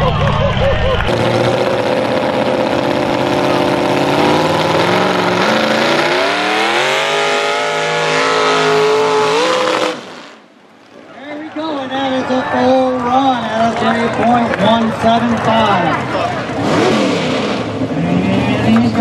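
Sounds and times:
racing engine at high revs: 1.0s - 10.4s, 14.7s - 19.0s.

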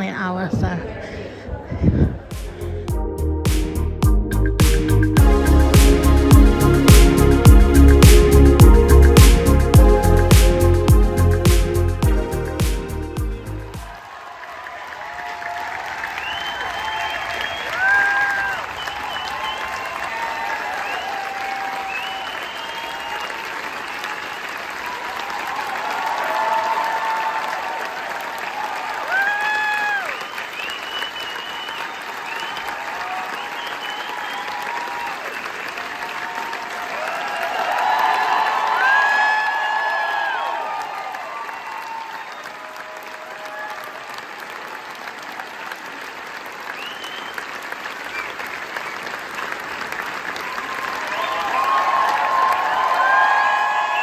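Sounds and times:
audience applauding: 13.7s - 54.0s
shouted cheers: 13.9s - 45.8s, 50.2s - 54.0s.

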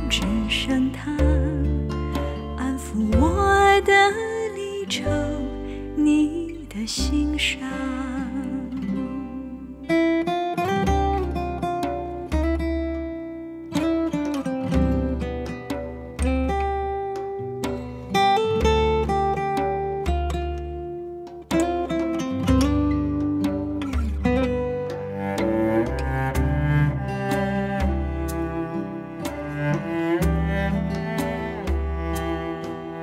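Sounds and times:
acoustic guitar picking: 0.0s - 33.0s
low bass line: 22.5s - 33.0s.

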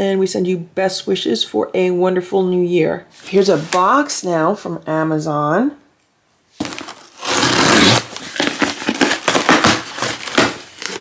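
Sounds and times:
box cutter ripping tape: 6.6s - 11.0s
cardboard scraping and crinkling: 6.6s - 11.0s.

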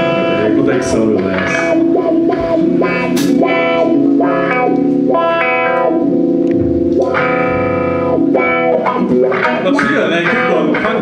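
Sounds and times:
distorted electric guitar chords: 0.0s - 11.0s
low bass note: 6.0s - 8.4s.

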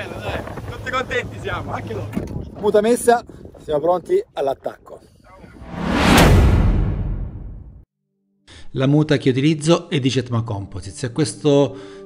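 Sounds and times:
whoosh with sharp hit: 5.6s - 7.8s.

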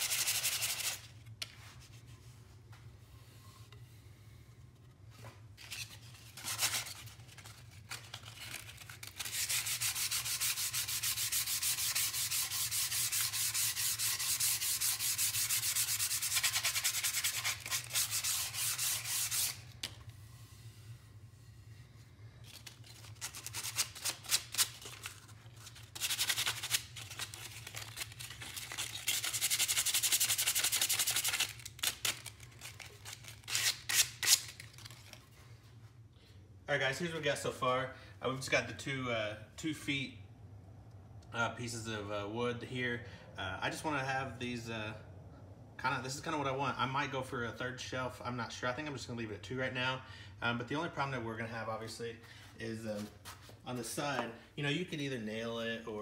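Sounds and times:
sandpaper sanding wood: 0.0s - 1.0s, 9.2s - 19.6s, 28.8s - 31.6s.

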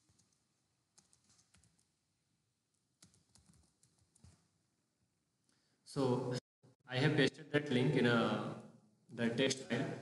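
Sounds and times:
keyboard typing: 1.0s - 1.9s, 3.0s - 4.5s.

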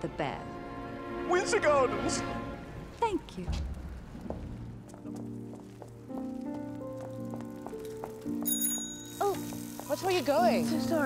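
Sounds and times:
orchestral music with held notes: 0.0s - 3.0s
bicycle bell ringing: 8.4s - 10.5s.

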